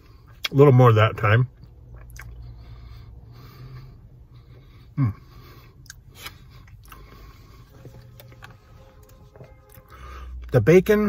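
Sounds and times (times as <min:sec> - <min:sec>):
low steady hum in car: 0:00.0 - 0:11.0
man chewing food: 0:01.6 - 0:10.2.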